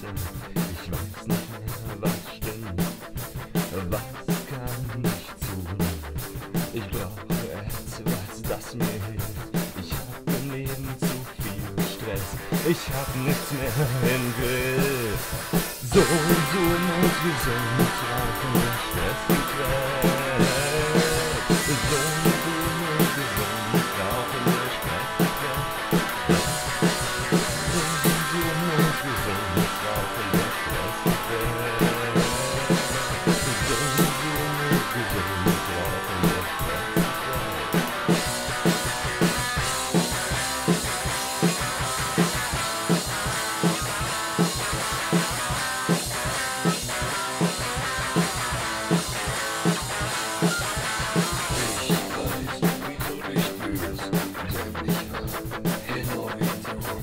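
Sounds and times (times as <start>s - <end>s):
rock guitar: 0.0s - 57.0s
steady drum beat: 0.0s - 57.0s.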